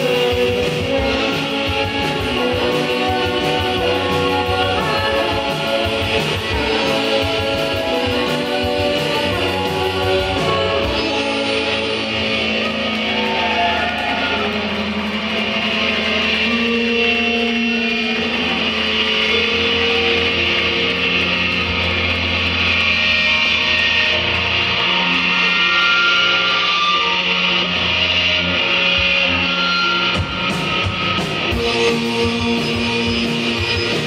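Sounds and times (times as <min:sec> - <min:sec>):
drums: 0:00.0 - 0:34.0
electric bass: 0:00.0 - 0:34.0
electric guitars: 0:00.0 - 0:34.0.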